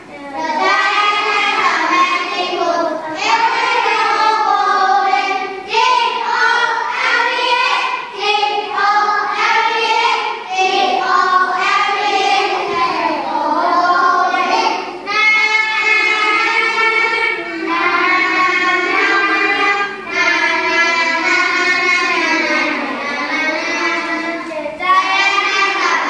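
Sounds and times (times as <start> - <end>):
children singing: 0.0 - 26.0.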